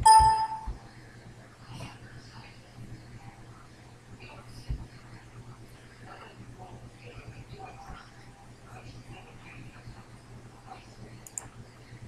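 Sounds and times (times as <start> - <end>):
bright ding: 0.0 - 0.7
click: 11.2 - 11.5.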